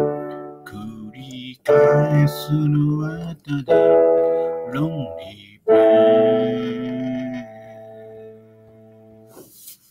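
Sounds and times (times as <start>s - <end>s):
piano chord ringing out: 3.7s - 9.3s.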